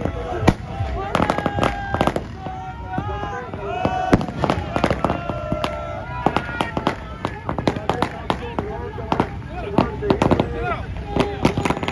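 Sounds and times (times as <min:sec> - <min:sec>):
firecrackers cracking: 0:00.0 - 0:11.9.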